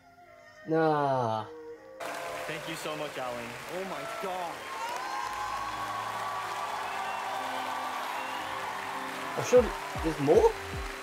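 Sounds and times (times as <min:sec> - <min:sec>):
audience applause: 0:02.0 - 0:11.0.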